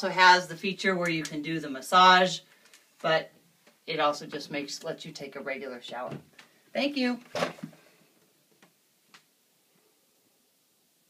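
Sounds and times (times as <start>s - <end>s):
faint clicks: 2.5s - 2.9s.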